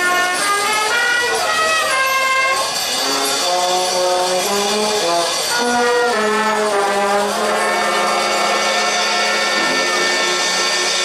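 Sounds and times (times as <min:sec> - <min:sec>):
brass band playing held chords: 0:00.0 - 0:11.0.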